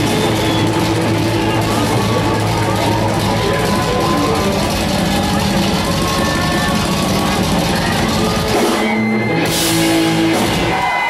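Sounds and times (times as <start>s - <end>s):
punk rock band playing live: 0.0s - 11.0s.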